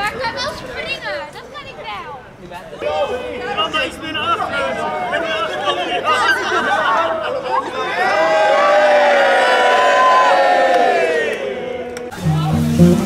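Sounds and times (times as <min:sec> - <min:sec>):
group of people cheering: 0:02.8 - 0:12.2.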